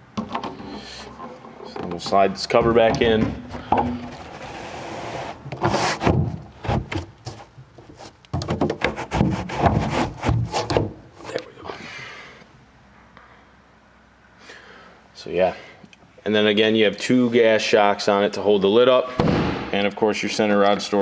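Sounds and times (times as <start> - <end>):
carpeted cover scraping slide: 4.2 - 6.1
knocks and thuds of cover: 5.5 - 7.1, 8.3 - 11.0, 19.2 - 19.6.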